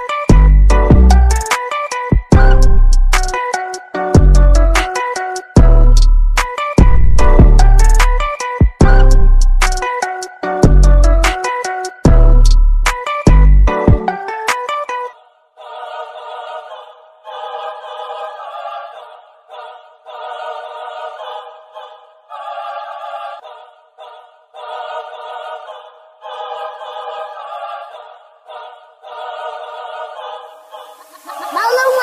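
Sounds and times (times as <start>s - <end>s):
choir singing short phrases: 15.2s - 32.0s.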